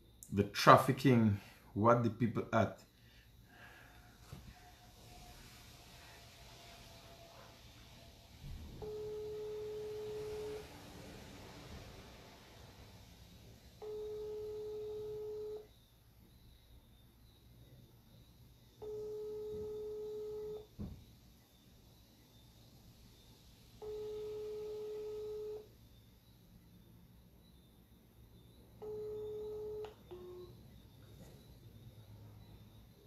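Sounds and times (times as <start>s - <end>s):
telephone ringback beep: 8.8s - 10.6s, 13.8s - 15.7s, 18.8s - 20.7s, 23.8s - 25.7s, 28.8s - 30.6s
brief lower tone: 28.8s - 31.5s.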